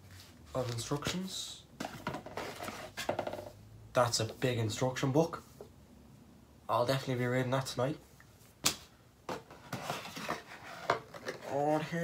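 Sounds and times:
cardboard flaps tapping and rustling: 1.8s - 3.5s.

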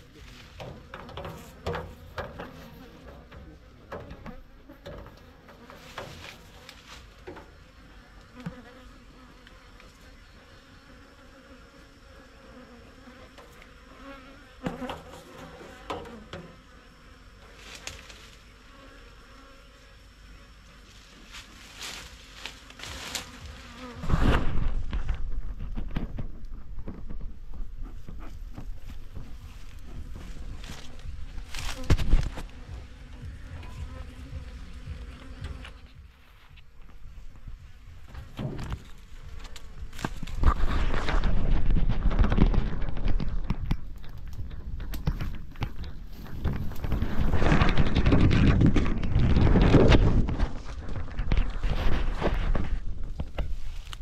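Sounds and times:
honeybees buzzing: 0.0s - 25.5s, 27.6s - 41.7s
knocks and clicks on hive: 0.6s - 6.2s.

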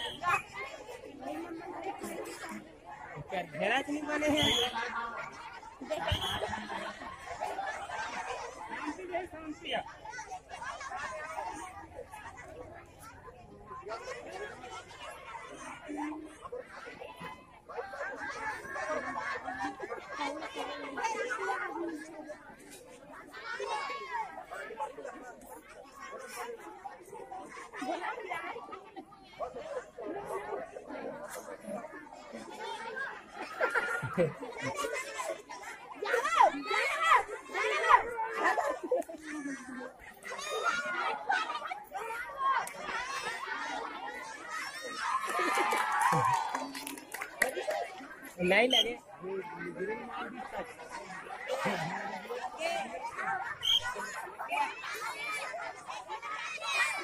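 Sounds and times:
crowd chattering: 0.0s - 57.0s
loud shout: 44.6s - 46.9s.

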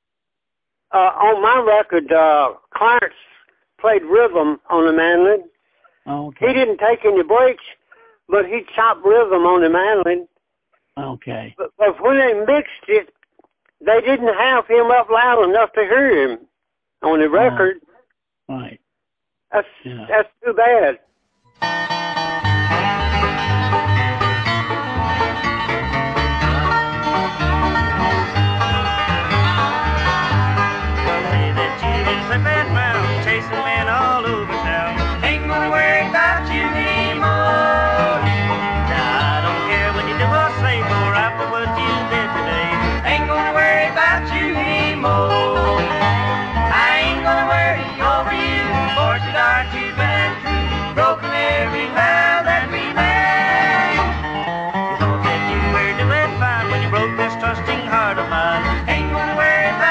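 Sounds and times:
bluegrass string band music: 21.6s - 59.9s.

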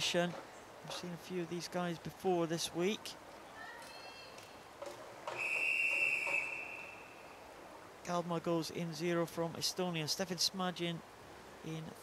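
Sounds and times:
long high-pitched whistle blast: 5.4s - 7.4s.

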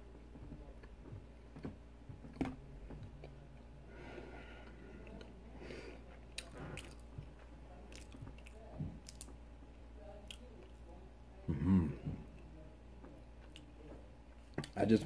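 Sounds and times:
person chewing: 0.8s - 3.7s, 4.4s - 9.4s, 10.2s - 10.8s, 13.4s - 13.8s.

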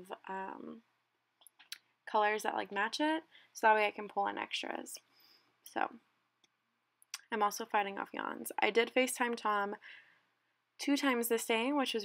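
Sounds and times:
woman speaking: 0.0s - 0.9s, 2.1s - 6.1s, 7.1s - 9.9s, 10.8s - 12.0s
woman breathing softly: 5.0s - 5.6s, 9.8s - 10.6s.

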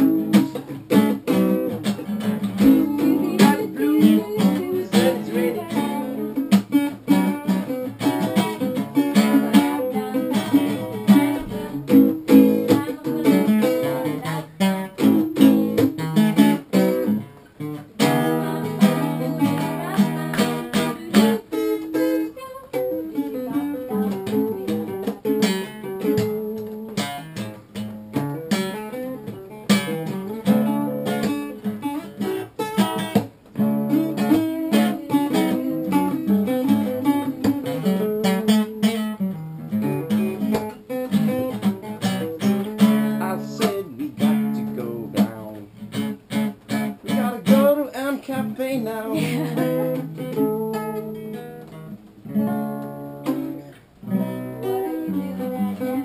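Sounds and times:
acoustic guitars strumming chords: 0.0s - 56.0s.

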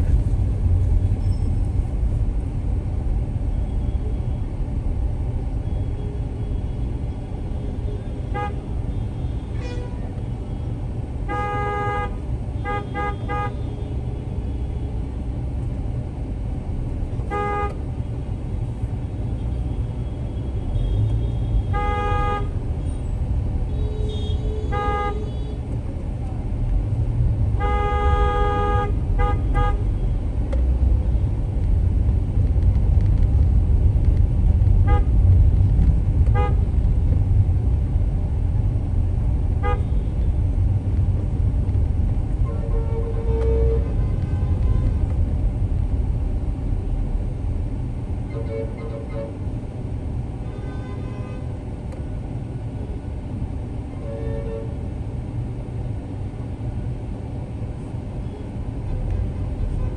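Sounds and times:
engine and traffic rumble: 0.0s - 59.9s
vehicle horns honking: 7.9s - 10.1s, 11.2s - 13.8s, 17.3s - 17.8s, 20.4s - 23.1s, 23.7s - 25.6s, 27.6s - 30.1s, 36.3s - 36.6s, 39.6s - 40.3s, 42.4s - 45.0s, 48.3s - 49.4s, 50.4s - 51.5s.

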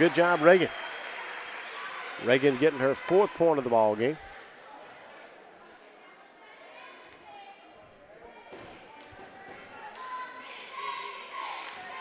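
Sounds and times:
faint crowd chatter: 0.0s - 12.0s.

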